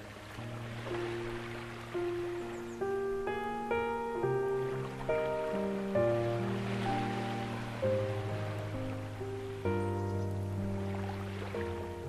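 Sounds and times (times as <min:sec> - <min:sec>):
ocean waves washing: 0:00.0 - 0:12.0
slow ambient piano: 0:00.0 - 0:12.0.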